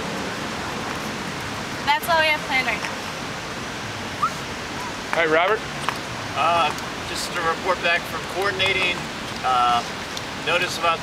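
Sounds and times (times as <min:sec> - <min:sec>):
city background noise: 0:00.0 - 0:11.0
short rising chirp: 0:04.2 - 0:04.9.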